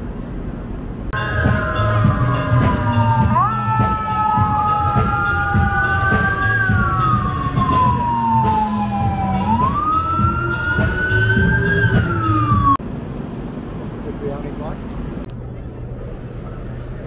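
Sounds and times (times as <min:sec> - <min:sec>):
traffic rumble: 0:00.0 - 0:17.0
fire engine siren wailing: 0:01.2 - 0:12.8.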